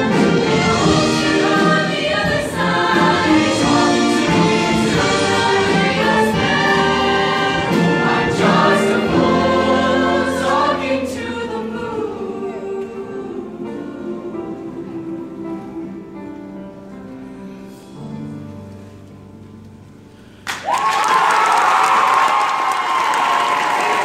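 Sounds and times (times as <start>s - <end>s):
choir singing: 0.0s - 17.0s
instrumental accompaniment: 0.0s - 20.2s.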